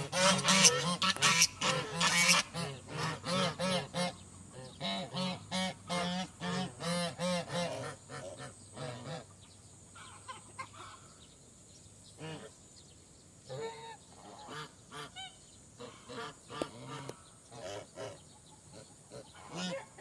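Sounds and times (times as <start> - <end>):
geese honking: 0.0 - 9.3, 18.8 - 20.0.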